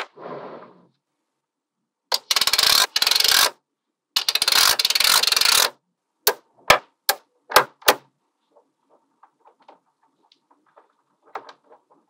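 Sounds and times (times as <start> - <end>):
magnetic balls clicking together: 2.1 - 3.6, 4.2 - 6.4.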